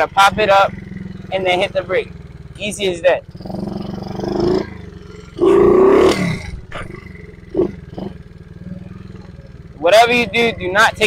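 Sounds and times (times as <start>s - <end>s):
small motorcycle engine revving: 0.0s - 11.0s.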